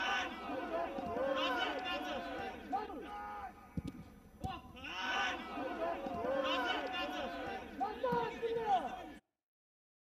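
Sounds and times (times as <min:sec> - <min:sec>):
man commentating excitedly: 0:04.5 - 0:09.2.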